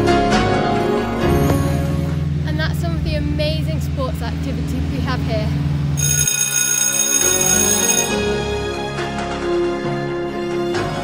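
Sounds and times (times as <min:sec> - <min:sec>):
background music: 0:00.0 - 0:06.0, 0:06.9 - 0:11.0
electric school bell ringing: 0:06.0 - 0:08.7.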